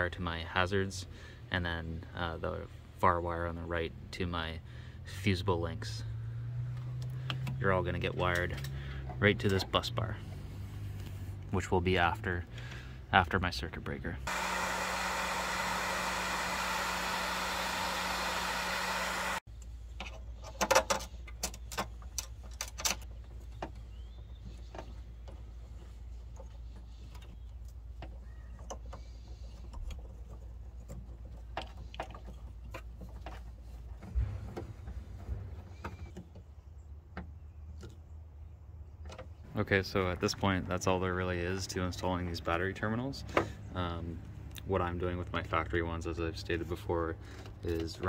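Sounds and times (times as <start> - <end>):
loud steady hiss: 14.3 - 19.4.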